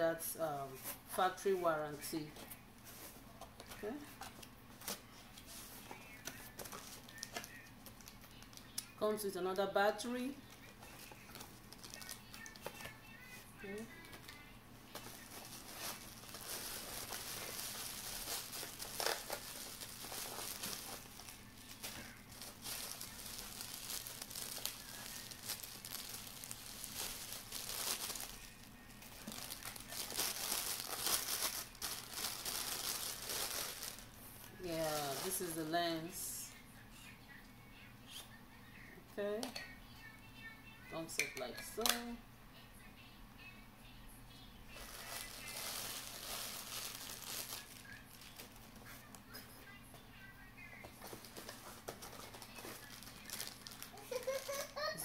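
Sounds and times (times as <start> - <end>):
plastic wrap crinkling: 4.8 - 9.0, 10.0 - 35.7, 44.7 - 49.3, 50.9 - 55.0.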